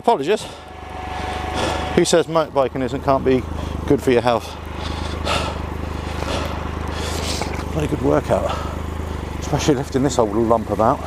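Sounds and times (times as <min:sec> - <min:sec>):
motorcycle engine idling: 0:00.0 - 0:11.0
person breathing heavily: 0:00.4 - 0:02.0, 0:03.5 - 0:07.6, 0:08.4 - 0:09.4.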